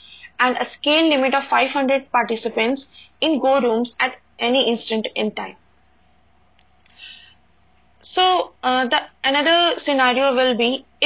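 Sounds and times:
faint room hiss: 0.0 - 11.0
person breathing in softly: 6.9 - 7.4.

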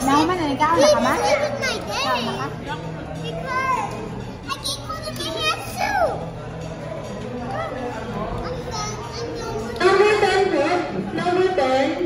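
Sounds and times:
children talking: 0.0 - 11.8.

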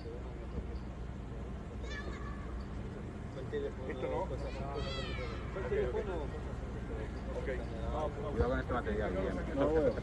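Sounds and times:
children shouting: 1.8 - 2.6, 4.4 - 5.6.

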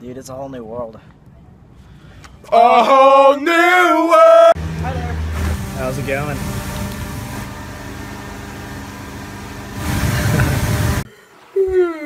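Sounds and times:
jet pump humming: 4.6 - 11.1.

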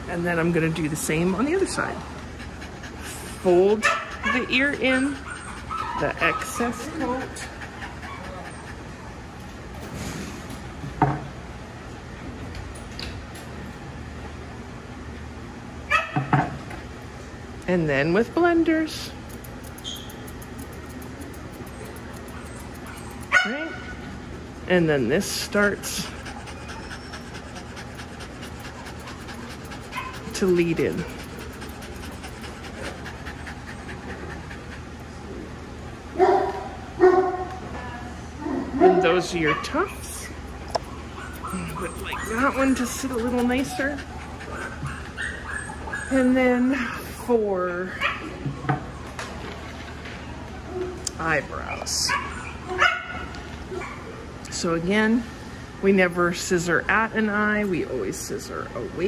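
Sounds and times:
dog panting: 0.1 - 9.9, 18.4 - 24.2, 24.8 - 36.6, 39.2 - 47.2
dog barking: 52.1 - 54.0.

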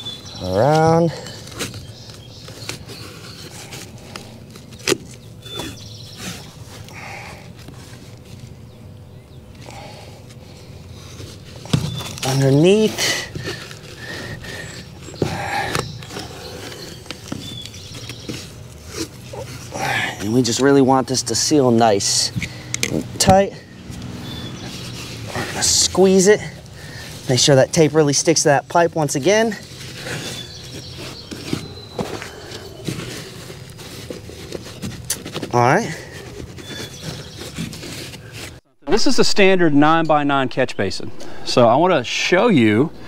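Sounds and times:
tape scraping and rustling: 0.0 - 8.7, 9.5 - 38.6.

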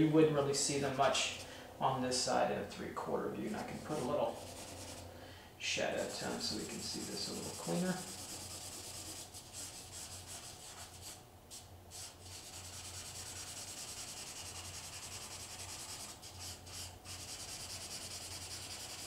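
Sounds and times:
steady low hum: 0.0 - 19.0
crayon rubbing on paper: 3.5 - 5.0, 5.9 - 11.2, 11.9 - 19.0.

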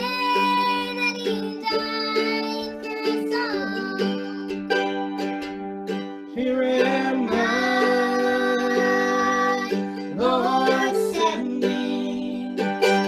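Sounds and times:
girl singing: 0.0 - 4.8, 6.8 - 13.0
mandolin strumming: 0.0 - 13.0.

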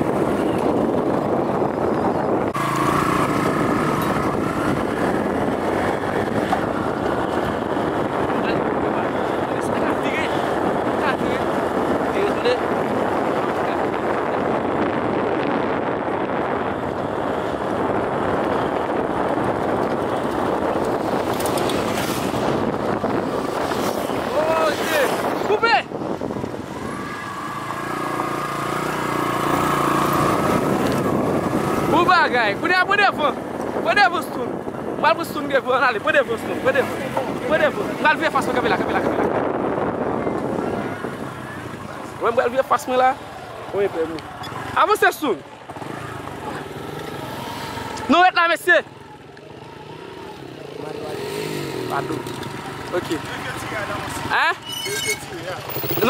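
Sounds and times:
wind on microphone: 0.0 - 44.3
vehicle moving on gravel road: 16.6 - 32.6, 48.9 - 56.0.

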